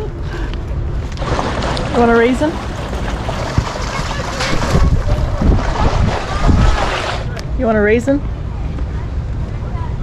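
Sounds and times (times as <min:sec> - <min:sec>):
wind buffeting microphone: 0:00.8 - 0:10.0.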